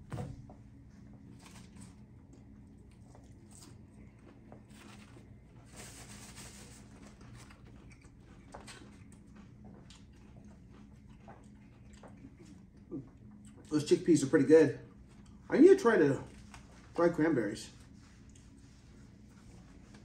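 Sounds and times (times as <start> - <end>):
low room hum: 0.0 - 20.0
faint chewing: 1.1 - 13.7, 14.9 - 15.5, 17.8 - 20.0.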